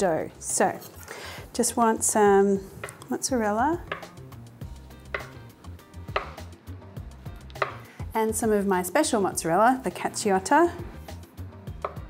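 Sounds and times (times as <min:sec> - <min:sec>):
knife knocking on wooden board: 0:03.8 - 0:04.3, 0:05.0 - 0:05.4, 0:06.1 - 0:06.4, 0:07.5 - 0:07.9, 0:11.8 - 0:12.0.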